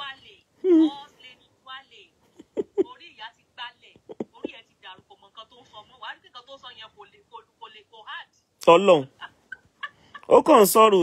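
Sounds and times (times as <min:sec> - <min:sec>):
person vocal sound falling in pitch: 0:00.6 - 0:00.9.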